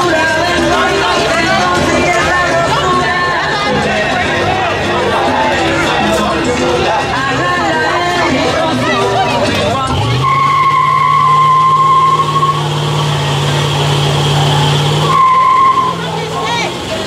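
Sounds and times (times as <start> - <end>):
truck engine revving: 0.0 - 17.0
tyres squealing: 0.0 - 17.0.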